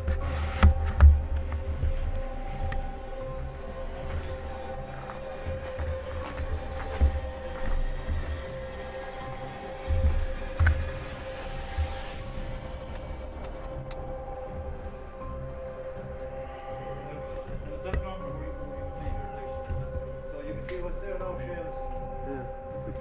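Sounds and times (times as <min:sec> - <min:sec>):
low thumps: 0:00.0 - 0:22.8
steady high-pitched tone: 0:00.0 - 0:23.0
fainter higher tone: 0:01.2 - 0:23.0.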